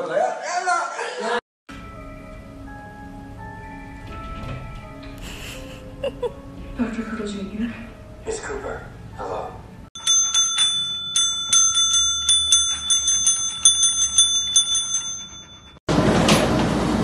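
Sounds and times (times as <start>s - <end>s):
desk service bell dinging: 10.0s - 15.8s.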